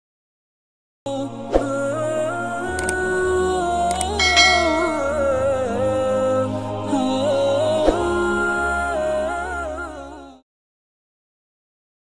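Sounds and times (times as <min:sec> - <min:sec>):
wordless vocal music: 0:01.1 - 0:10.4
bright chime: 0:04.2 - 0:05.9.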